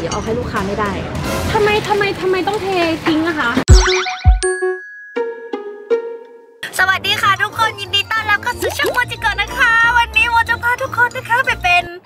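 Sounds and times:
bright ding: 3.7 - 6.6
chime tone: 3.7 - 6.6.

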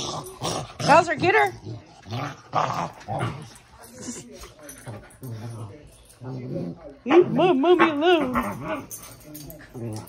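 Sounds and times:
dogs growling: 0.0 - 10.0.

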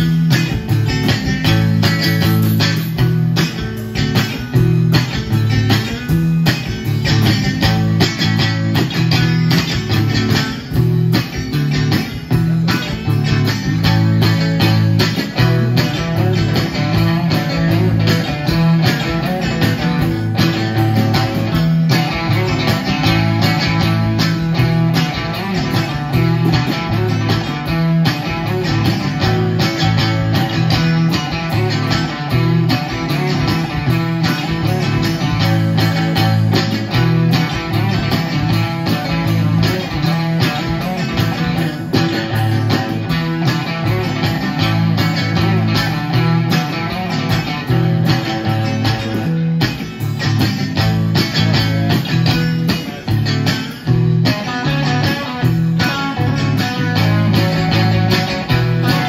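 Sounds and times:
drums and cymbals steady beat: 0.0 - 59.0
electric guitar through an amplifier: 0.0 - 59.0.

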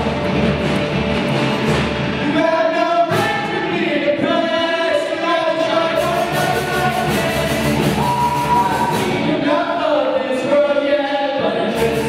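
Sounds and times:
bass guitar: 0.0 - 4.4, 5.9 - 9.6
people singing: 2.2 - 12.0.

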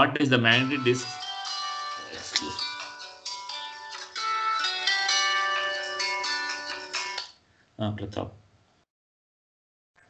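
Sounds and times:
phone ringtone chiming melody: 0.0 - 7.3.

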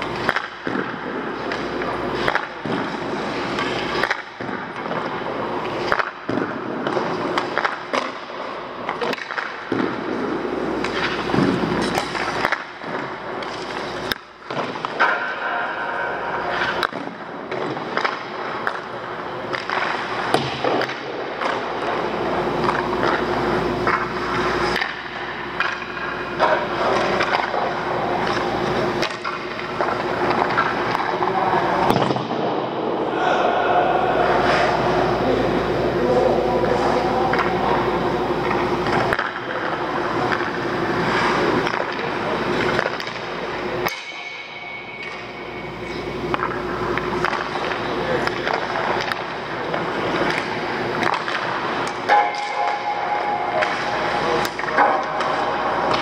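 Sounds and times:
hockey sticks and pucks knocking: 0.0 - 32.6, 36.6 - 56.0.

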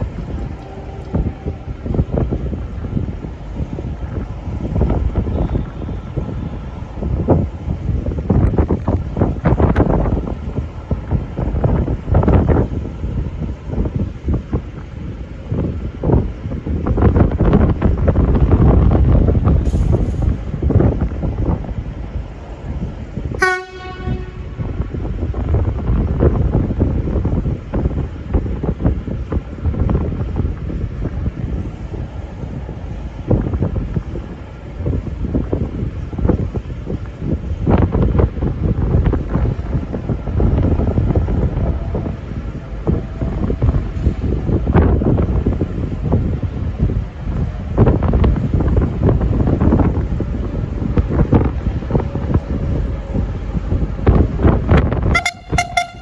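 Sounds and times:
diesel railcar approaching: 0.0 - 56.0
wind buffeting microphone: 0.0 - 56.0
short high-pitched blip: 55.2 - 56.0.

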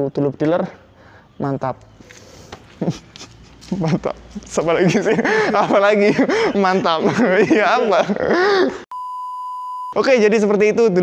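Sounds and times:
man laughing and talking: 2.7 - 8.9
high-pitched censor bleep: 8.9 - 10.0.

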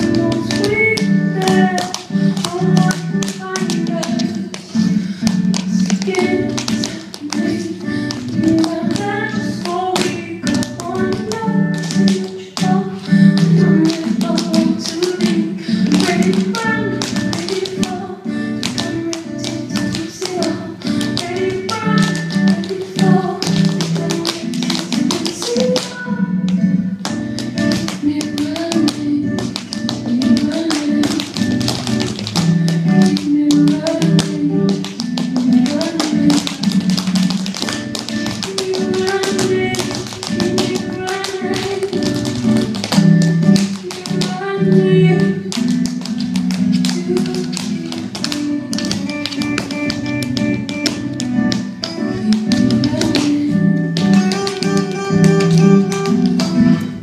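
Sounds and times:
recorded song: 0.0 - 57.0
tap shoes striking stage floor: 0.0 - 57.0.

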